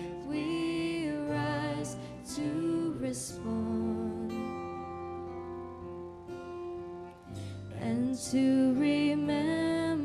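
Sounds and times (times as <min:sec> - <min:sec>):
person singing: 0:00.0 - 0:05.2, 0:07.5 - 0:10.0
guitars holding soft chord: 0:00.0 - 0:10.0.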